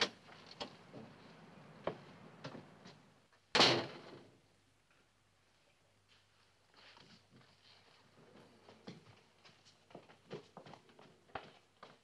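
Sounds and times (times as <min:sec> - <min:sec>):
door banging shut: 0:03.5 - 0:04.3.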